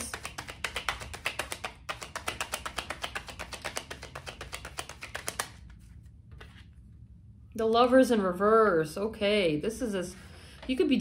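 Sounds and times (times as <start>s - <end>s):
cards being shuffled by hand: 0.0s - 6.8s.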